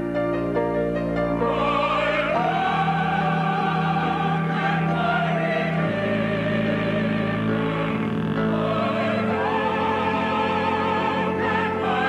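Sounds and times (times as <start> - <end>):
low synthesizer tones: 0.0 - 12.0
choir singing a held chord: 1.3 - 12.0.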